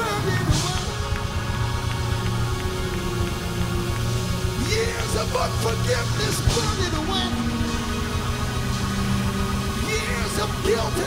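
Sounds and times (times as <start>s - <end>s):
low bass drone: 0.0s - 11.0s
worship music held chords: 0.0s - 11.0s.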